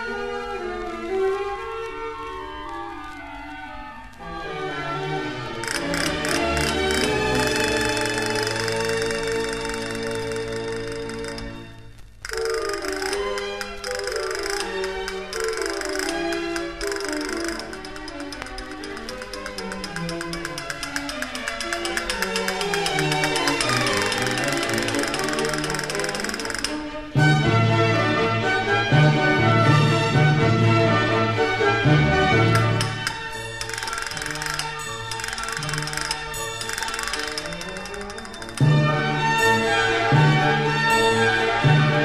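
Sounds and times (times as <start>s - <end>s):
castanet roll: 5.6s - 26.8s, 32.4s - 38.8s
chamber orchestra strings: 12.3s - 42.0s.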